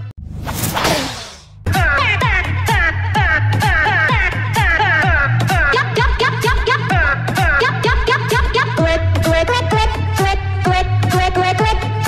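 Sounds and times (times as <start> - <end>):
music: 1.6 - 12.0.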